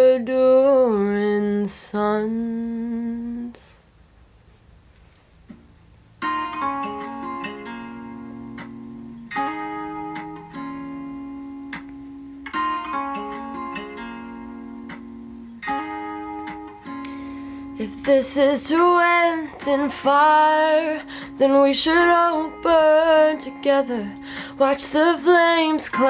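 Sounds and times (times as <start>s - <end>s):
acoustic guitar chords: 6.2s - 26.0s.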